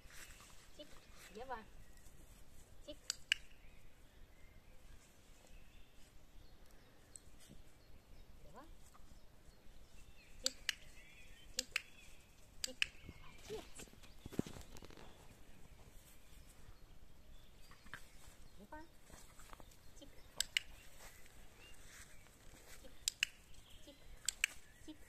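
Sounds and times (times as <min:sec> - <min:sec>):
dog-training clicker clicking: 0:02.9 - 0:03.5, 0:10.4 - 0:10.9, 0:11.6 - 0:12.0, 0:12.6 - 0:13.0, 0:20.3 - 0:20.8, 0:22.9 - 0:23.5, 0:24.2 - 0:24.6.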